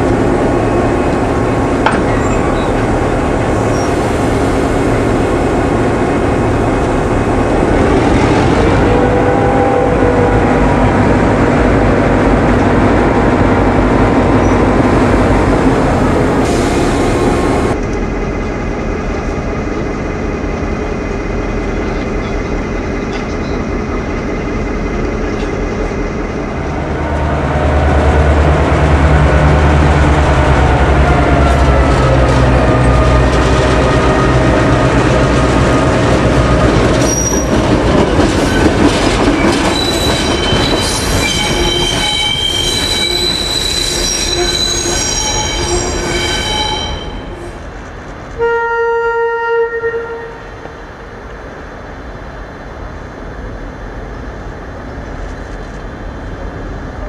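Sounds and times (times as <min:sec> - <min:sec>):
diesel locomotive engines running: 0:00.0 - 0:48.4, 0:49.7 - 0:57.0.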